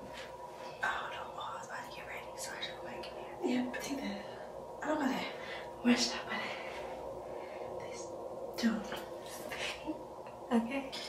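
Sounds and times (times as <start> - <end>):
faint hum: 0.0 - 11.0
person whispering: 7.7 - 9.9.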